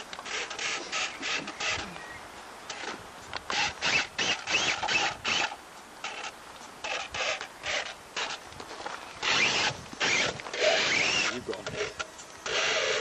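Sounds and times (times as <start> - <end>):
tyres scrabbling on rock: 2.7 - 13.0
electric motor and gears whining: 3.5 - 13.0.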